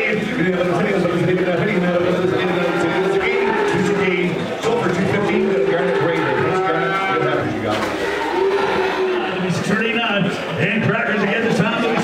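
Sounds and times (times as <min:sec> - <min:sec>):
people talking: 0:00.0 - 0:12.0
cattle mooing: 0:02.0 - 0:09.5.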